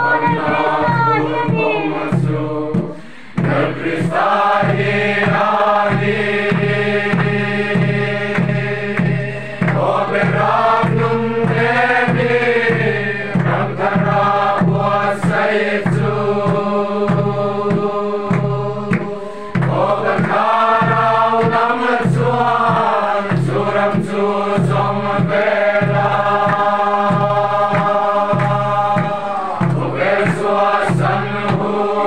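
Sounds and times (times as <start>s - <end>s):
group singing a hymn: 0.0s - 32.0s
steady low beat: 0.0s - 32.0s.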